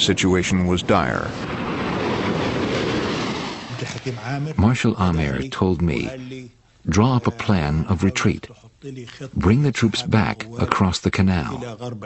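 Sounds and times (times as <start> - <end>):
tank engine noise: 0.0 - 4.3.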